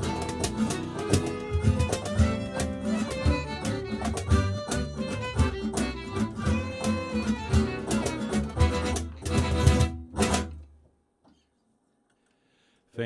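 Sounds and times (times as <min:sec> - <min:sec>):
violin: 0:00.0 - 0:10.5
accordion: 0:00.0 - 0:10.6
loud accented band chords: 0:00.0 - 0:10.6
upright bass: 0:00.0 - 0:10.6
cajon: 0:00.0 - 0:10.7
acoustic guitar: 0:00.0 - 0:10.8.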